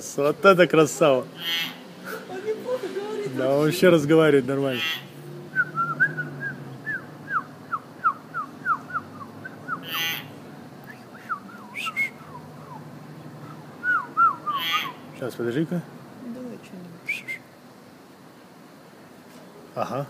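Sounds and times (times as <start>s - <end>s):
myna harsh squawk: 1.4s - 1.9s, 4.7s - 5.1s, 9.7s - 10.4s, 14.3s - 15.1s.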